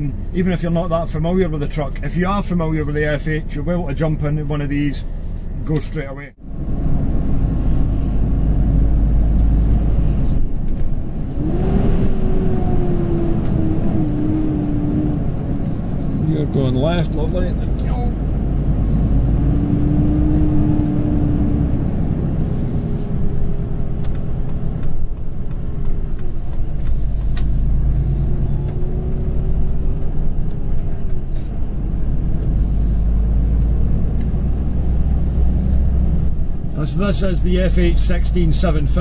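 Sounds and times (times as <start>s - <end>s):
diesel truck engine drone: 0.0s - 39.0s
faint engine whine: 0.0s - 39.0s
road noise: 0.0s - 39.0s.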